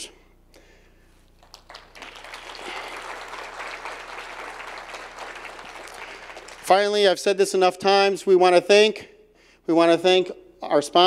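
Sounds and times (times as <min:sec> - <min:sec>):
audience applauding: 0:01.4 - 0:07.0.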